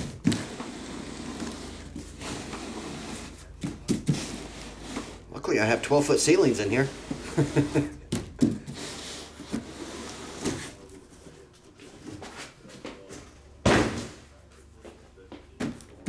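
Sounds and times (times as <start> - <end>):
cardboard rustling: 0.0 - 5.3
cardboard boxes knocking: 3.6 - 4.4, 8.0 - 8.9
loud thump: 13.6 - 14.2.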